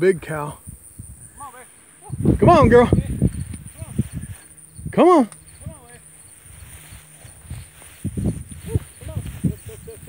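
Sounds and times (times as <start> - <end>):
high insect trill: 0.0 - 10.0.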